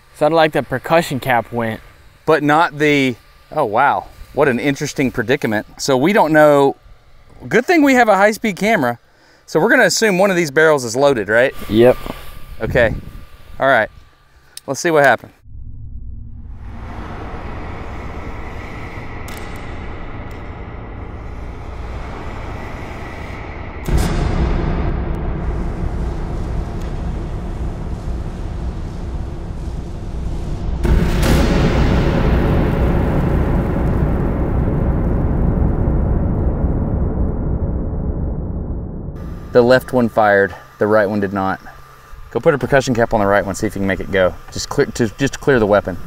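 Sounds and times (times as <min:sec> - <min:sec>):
slowed pistol firing rumble: 0:15.4 - 0:39.6.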